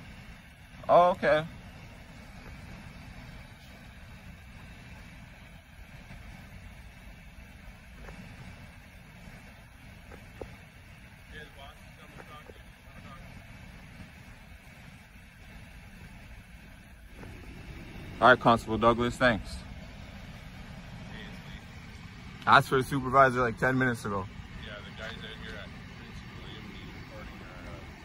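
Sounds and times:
car engine idling: 0:00.0 - 0:28.0
faint voices: 0:09.2 - 0:28.0.

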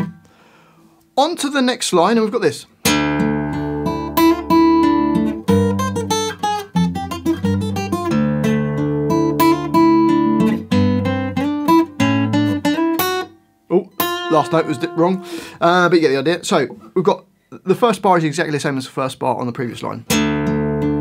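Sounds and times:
acoustic guitar picking: 0:00.0 - 0:00.4, 0:02.8 - 0:15.6, 0:20.1 - 0:21.0.

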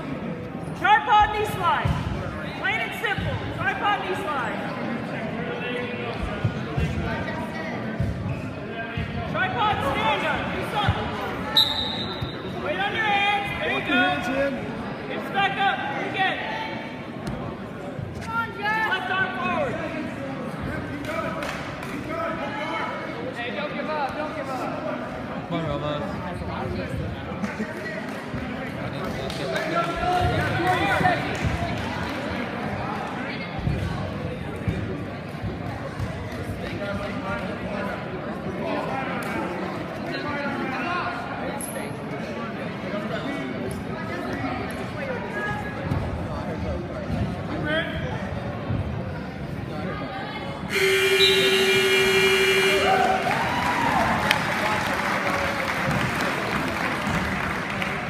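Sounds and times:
scoreboard horn blast: 0:50.7 - 0:53.2
crowd applause and cheering: 0:50.8 - 0:58.0.

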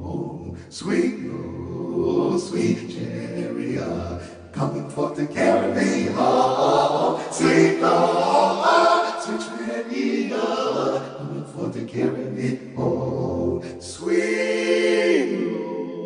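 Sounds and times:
choir-like processed voice singing: 0:00.0 - 0:16.0.

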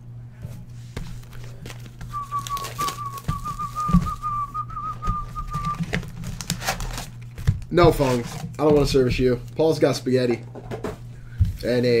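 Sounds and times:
cardboard boxes being handled: 0:00.8 - 0:09.4
person whistling: 0:02.1 - 0:05.9.

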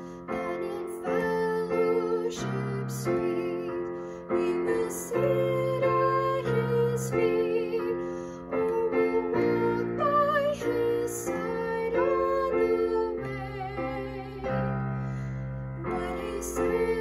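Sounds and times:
piano chords: 0:00.0 - 0:17.0
woman singing a hymn: 0:00.3 - 0:14.7, 0:15.8 - 0:17.0.

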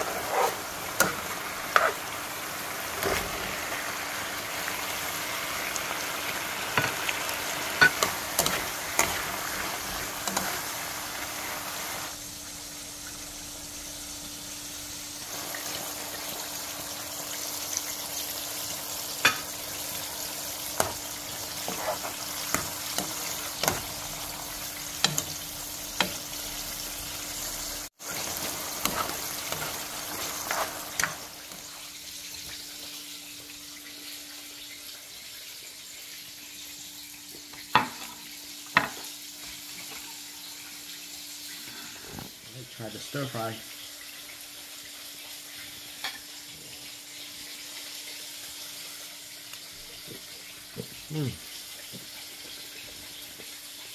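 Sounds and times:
food sizzling in frying pan: 0:00.0 - 0:53.9.

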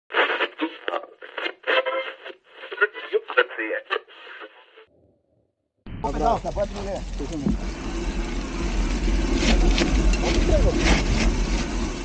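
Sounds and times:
person speaking over radio: 0:00.1 - 0:04.8.

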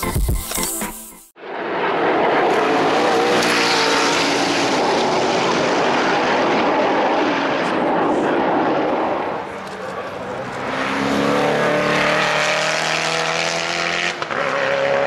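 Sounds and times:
car engine accelerating hard: 0:01.5 - 0:15.0.

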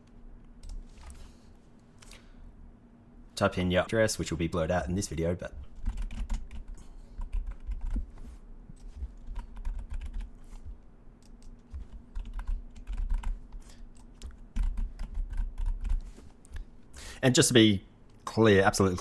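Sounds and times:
steady low hum: 0:00.0 - 0:19.0
typing on computer keyboard: 0:05.8 - 0:08.0, 0:08.8 - 0:10.3, 0:11.2 - 0:16.1.

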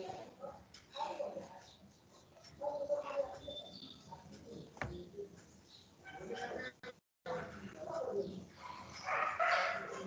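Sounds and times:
dog barking: 0:08.6 - 0:10.0.

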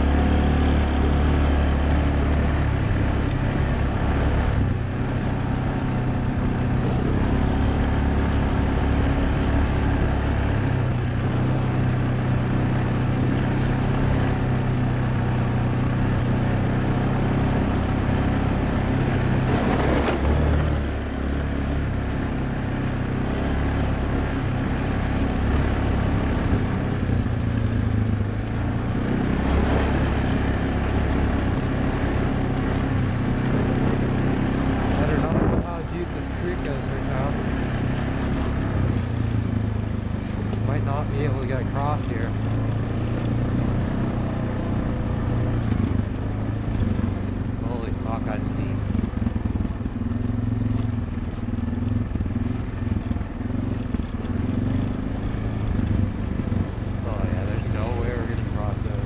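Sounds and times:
atv engine revving: 0:00.0 - 0:59.0
wind: 0:00.0 - 0:59.0.

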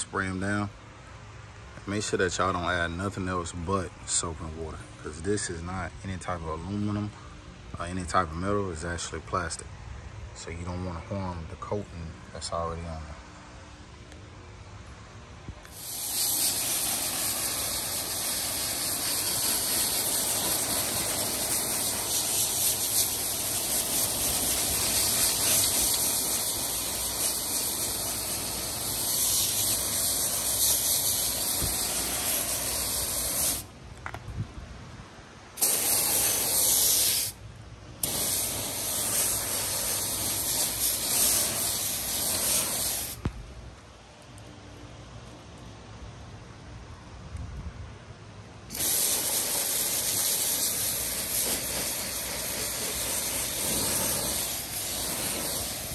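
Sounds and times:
hose nozzle spraying water: 0:15.7 - 0:33.7, 0:35.6 - 0:37.4, 0:38.0 - 0:43.2, 0:48.7 - 0:55.9.

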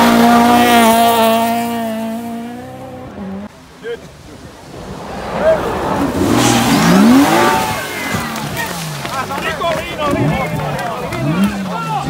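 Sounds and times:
rally car engine revving: 0:00.0 - 0:03.5, 0:04.7 - 0:12.0
car sliding on gravel: 0:04.1 - 0:12.0.

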